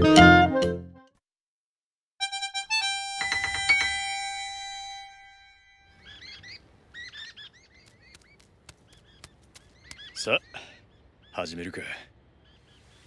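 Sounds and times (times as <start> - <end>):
small birds chirping: 5.9 - 13.0.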